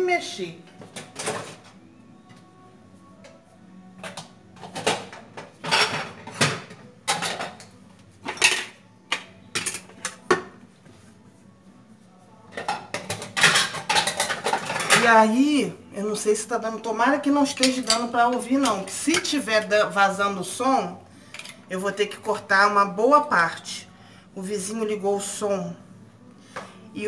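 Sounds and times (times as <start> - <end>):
dishes and cutlery clinking: 0.8 - 1.8, 4.0 - 10.6, 12.5 - 15.4, 17.4 - 19.4, 21.3 - 21.7.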